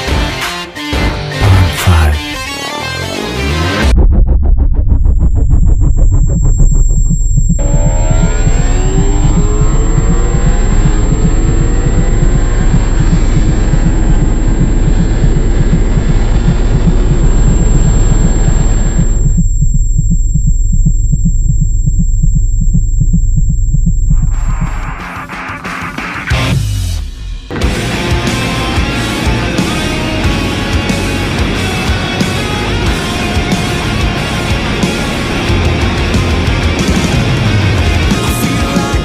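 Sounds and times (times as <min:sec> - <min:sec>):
deep regular throbbing pulse: 0:01.4 - 0:02.4, 0:03.7 - 0:25.1.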